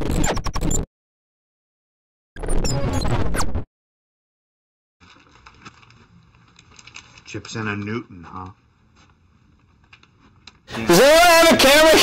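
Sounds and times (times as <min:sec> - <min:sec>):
faint clicks and rustles: 0:05.0 - 0:10.7.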